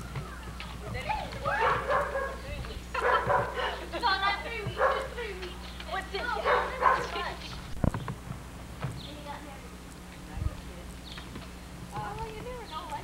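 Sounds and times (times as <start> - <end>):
puppy yipping and barking: 1.5 - 2.4.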